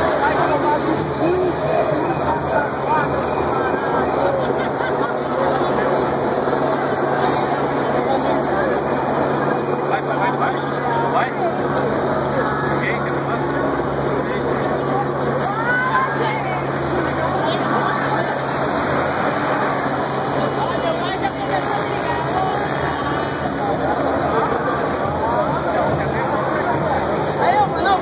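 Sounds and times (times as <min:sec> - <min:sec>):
crowd talking: 0:00.0 - 0:28.0
traffic engine hum: 0:00.0 - 0:28.0.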